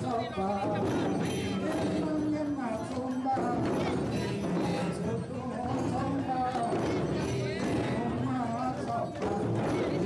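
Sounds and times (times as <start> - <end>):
hollow-knocking barrel drum beat: 0.0 - 10.0.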